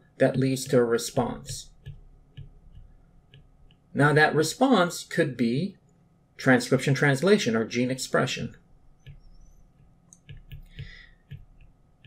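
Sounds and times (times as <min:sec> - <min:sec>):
stylus tapping on tablet: 0:00.6 - 0:03.9, 0:08.9 - 0:12.0.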